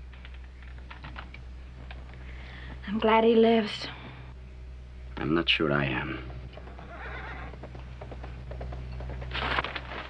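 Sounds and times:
low soundtrack hum: 0:00.0 - 0:10.0
hoof clops: 0:06.2 - 0:10.0
horse whinnying: 0:06.6 - 0:07.8.

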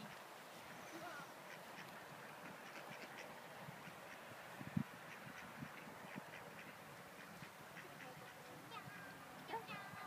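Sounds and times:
ducks quacking: 0:00.0 - 0:04.3, 0:05.0 - 0:09.2.

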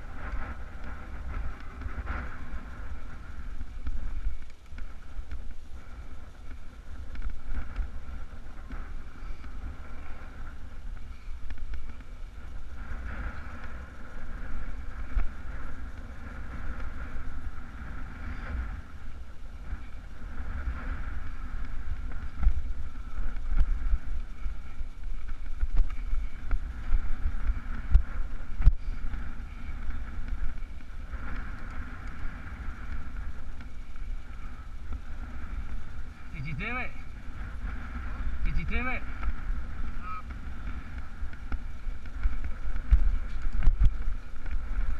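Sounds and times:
bike tyres rattling on rocks: 0:00.0 - 0:44.9
wind buffeting microphone: 0:00.0 - 0:44.9.

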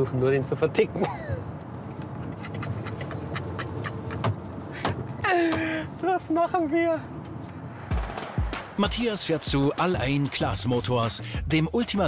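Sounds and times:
car cabin road rumble: 0:00.0 - 0:07.8.

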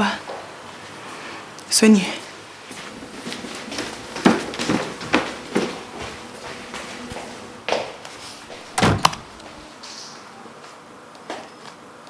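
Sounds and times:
door thud: 0:08.7 - 0:09.3
door latch click: 0:08.8 - 0:09.3.

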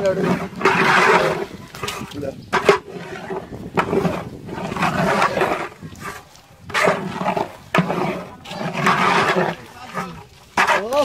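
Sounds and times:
metal ladle stirring potatoes in pot: 0:00.0 - 0:11.0.

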